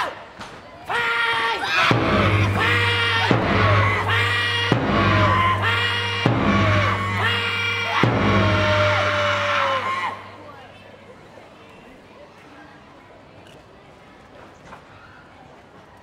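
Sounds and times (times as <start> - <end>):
men bellowing calls in unison: 1.1 - 10.3
sharp hit: 1.9 - 10.3.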